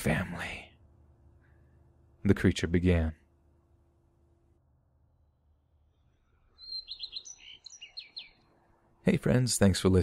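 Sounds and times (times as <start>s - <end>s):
bird chirping: 5.7s - 8.9s.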